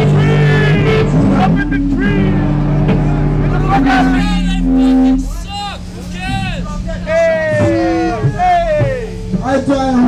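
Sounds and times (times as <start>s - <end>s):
distorted guitar and bass: 0.0s - 10.0s
shouted voices: 3.5s - 9.2s.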